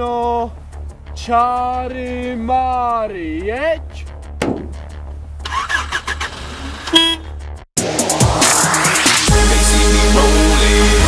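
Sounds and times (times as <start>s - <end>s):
music: 0.0s - 6.3s, 7.2s - 11.0s
car horn honk: 6.8s - 7.4s.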